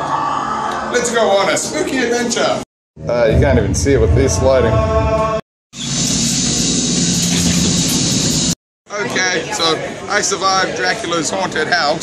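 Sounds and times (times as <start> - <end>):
low rumble: 3.0 - 5.4
low hum: 3.0 - 8.6.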